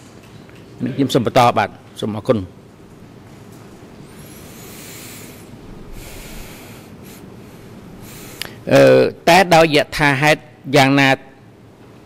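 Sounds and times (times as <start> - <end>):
steady hiss: 3.1 - 10.4.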